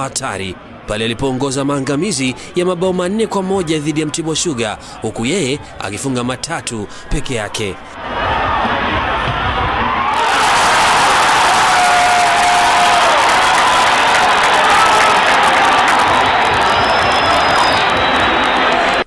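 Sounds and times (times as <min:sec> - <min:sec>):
stadium crowd cheering: 0:07.9 - 0:19.0.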